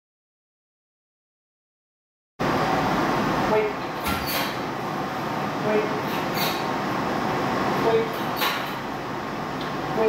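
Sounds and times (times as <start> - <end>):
steady background noise: 2.4 - 10.0
short squeaks: 4.1 - 4.6, 6.1 - 6.7.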